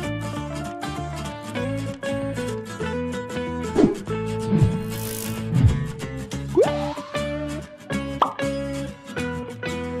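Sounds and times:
plucked guitar-like music: 0.0s - 10.0s
rising bloop sound effect: 6.5s - 7.4s.

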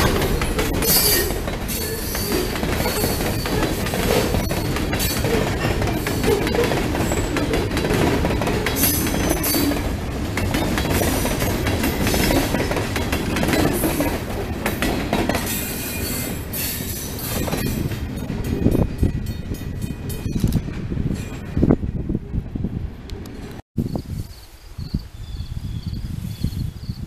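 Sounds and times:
freight train wheels clattering: 0.0s - 21.9s.

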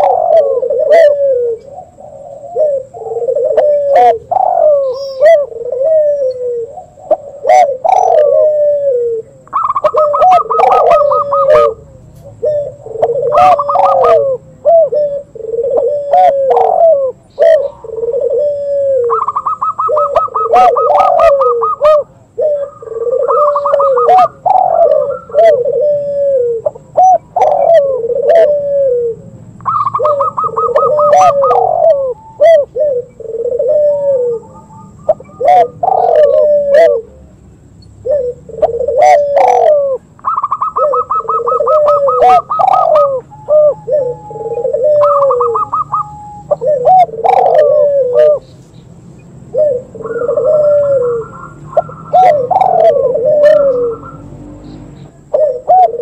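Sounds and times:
doves cooing: 0.0s - 56.0s.

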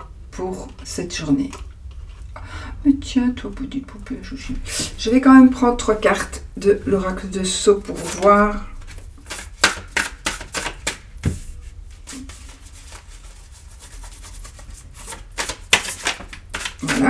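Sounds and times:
cards being shuffled: 7.8s - 17.0s.

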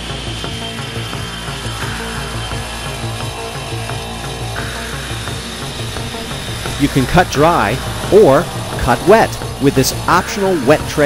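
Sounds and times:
background music with steady beat: 0.0s - 11.0s
masonry saw cutting paver: 1.7s - 11.0s.

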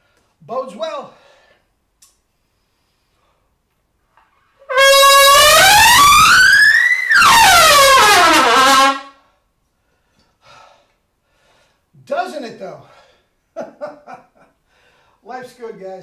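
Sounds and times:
breath: 1.1s - 1.7s, 2.3s - 3.6s, 9.2s - 11.9s, 12.8s - 13.4s, 14.6s - 15.2s
trumpet gliding up and down: 4.5s - 9.2s.

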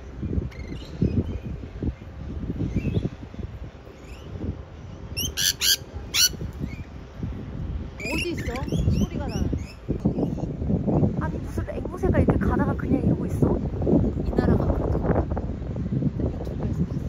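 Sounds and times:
birds chirping high: 0.0s - 7.3s, 8.0s - 11.2s
birds screeching shrilly: 5.2s - 6.4s.

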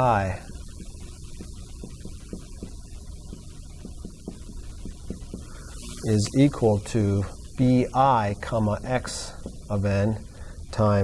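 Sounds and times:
marker tapping on whiteboard: 0.0s - 5.7s, 9.3s - 9.8s
electrical hum: 0.0s - 11.0s.

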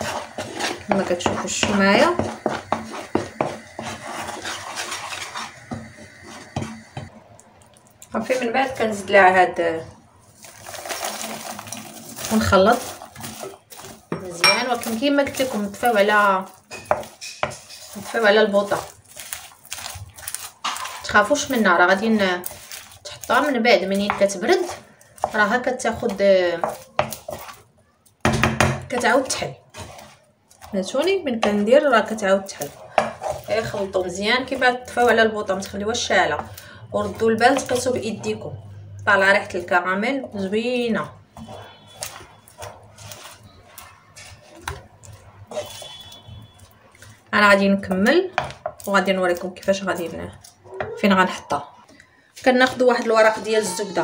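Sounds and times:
bubbling sugar hissing: 0.0s - 7.2s
wooden spoon scraping a pan: 0.0s - 7.2s, 8.2s - 27.7s, 28.5s - 51.6s, 52.3s - 54.0s.

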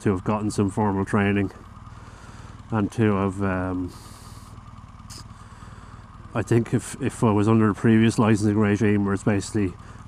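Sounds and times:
motorcycle idling: 0.0s - 10.0s.

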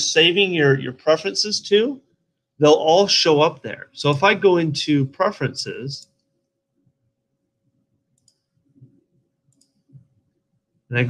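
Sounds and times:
computer mouse clicks: 8.1s - 10.2s.

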